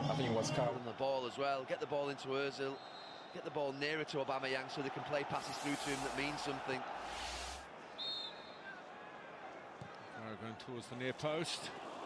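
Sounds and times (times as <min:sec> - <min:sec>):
stadium crowd hubbub: 0:00.0 - 0:12.0.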